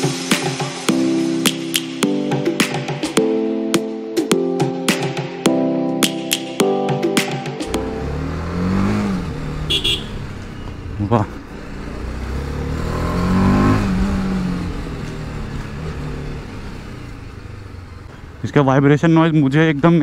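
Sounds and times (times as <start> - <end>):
motorcycle engine revving: 7.6 - 20.0.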